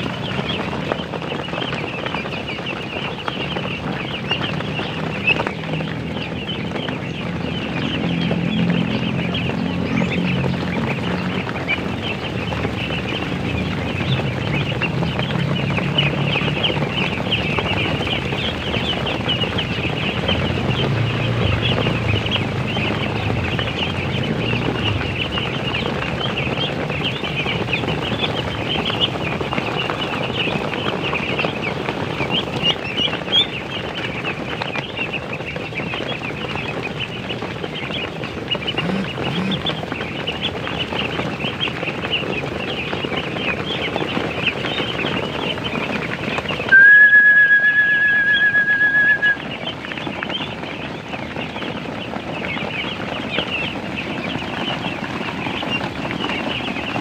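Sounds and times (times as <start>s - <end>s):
ducklings peeping: 0.0s - 57.0s
steady high tone: 46.7s - 49.4s.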